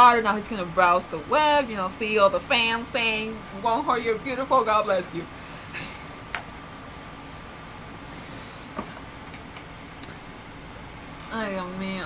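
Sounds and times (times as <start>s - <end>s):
air conditioner hiss and hum: 0.0s - 12.0s.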